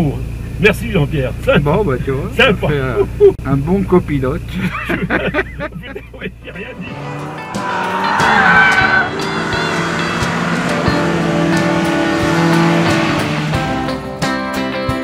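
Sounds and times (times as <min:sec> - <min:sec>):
voices in car: 0:00.0 - 0:09.2
car engine running hard: 0:00.0 - 0:14.5
tyres squealing: 0:05.8 - 0:13.2
background music: 0:06.5 - 0:15.0.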